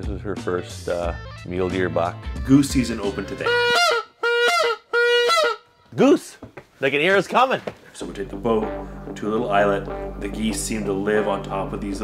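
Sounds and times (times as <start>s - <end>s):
goose honking: 3.0s - 5.7s.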